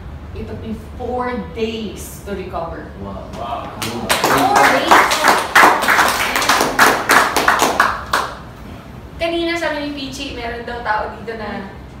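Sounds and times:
small audience clapping: 3.4 - 8.6.

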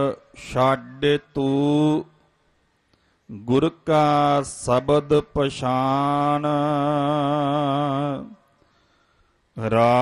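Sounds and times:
man chanting: 0.0 - 2.3, 3.3 - 8.6, 9.5 - 10.0.

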